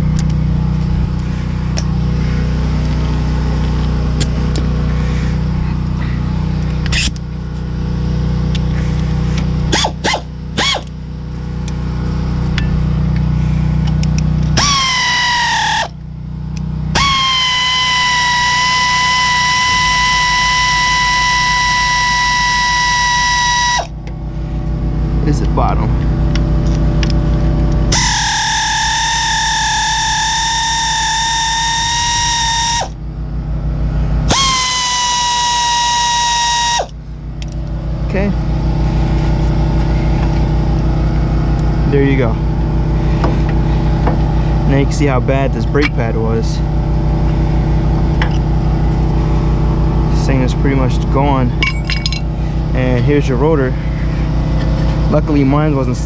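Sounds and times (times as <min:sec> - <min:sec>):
air ratchet whining: 0:06.6 - 0:07.3, 0:08.5 - 0:11.0, 0:13.8 - 0:24.2, 0:27.8 - 0:33.0, 0:34.2 - 0:37.7.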